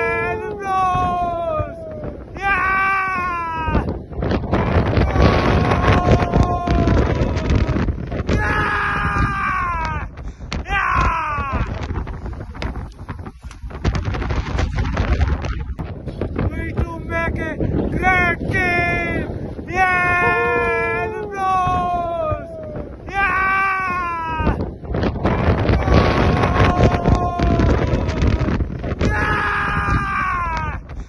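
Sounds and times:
man shouting long calls: 0.0 - 3.9, 5.0 - 11.8, 17.2 - 24.6, 25.7 - 30.8
wind buffeting microphone: 0.0 - 31.0.

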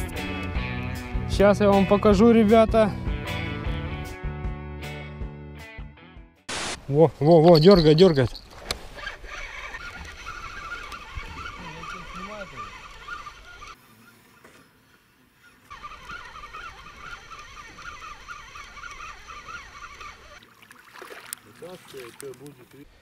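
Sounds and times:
fishing reel whirring: 7.4 - 23.0.

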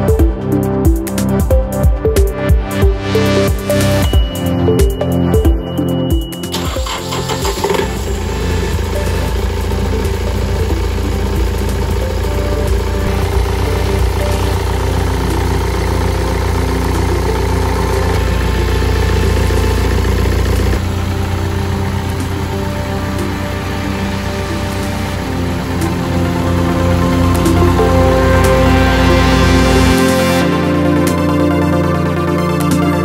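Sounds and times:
diesel engine idling: 3.3 - 32.4.

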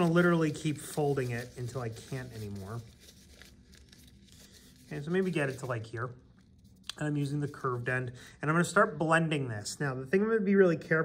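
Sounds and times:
paper towel crinkling: 0.0 - 8.1.

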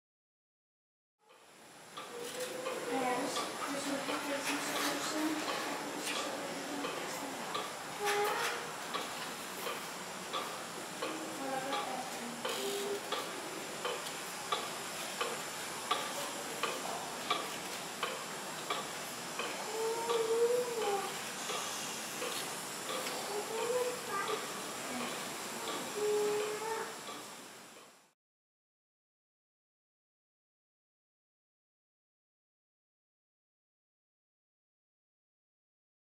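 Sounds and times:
room noise hiss: 1.2 - 28.2
distant voices: 2.0 - 27.2.

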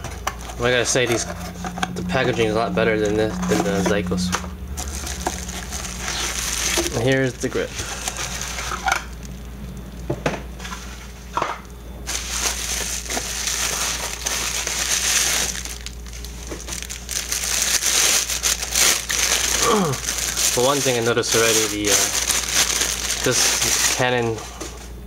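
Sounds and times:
bubble wrap crinkling and crackling: 0.0 - 24.5.

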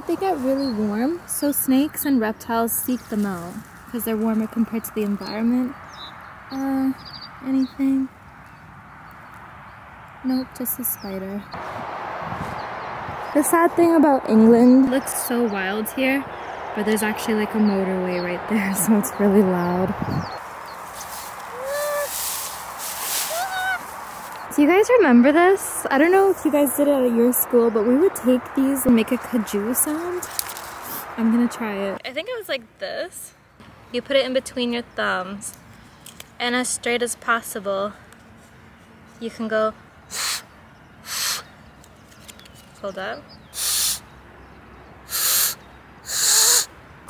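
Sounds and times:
grass swishing against legs: 20.4 - 24.7
breathy rush of air through hands: 40.1 - 41.5, 45.1 - 46.7.

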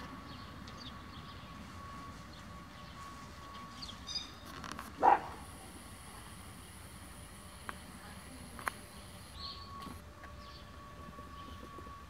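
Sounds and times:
dog barking: 5.0 - 5.5.

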